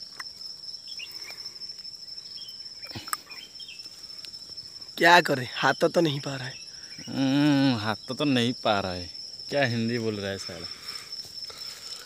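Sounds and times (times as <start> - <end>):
crickets trilling: 0.0 - 12.0
man speaking: 5.0 - 10.7.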